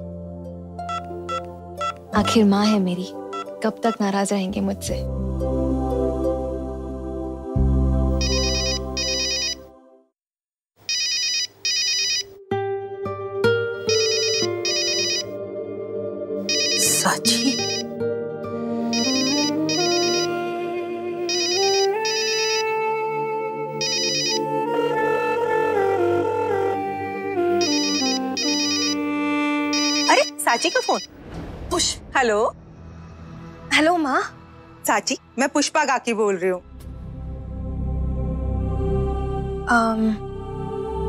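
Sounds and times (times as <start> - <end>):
low background music: 0.0 - 9.7, 12.3 - 30.6, 32.4 - 41.0
electronic trilling ringtone: 8.2 - 9.7, 10.9 - 12.4, 13.8 - 15.4, 16.4 - 18.0, 18.9 - 20.4, 21.3 - 22.8, 23.8 - 24.4, 27.6 - 31.1.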